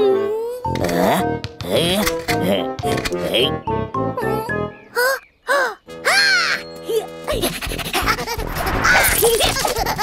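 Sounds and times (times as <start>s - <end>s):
children's background music: 0.0s - 10.0s
squeaky cartoon voices babbling: 3.2s - 7.5s.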